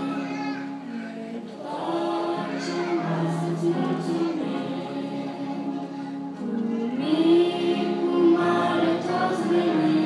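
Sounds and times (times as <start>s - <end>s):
choir singing a slow hymn: 0.0s - 10.0s.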